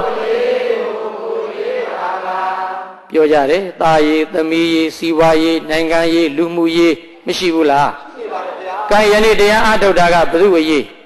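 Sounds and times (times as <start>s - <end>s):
verse chanting: 0.0s - 11.0s.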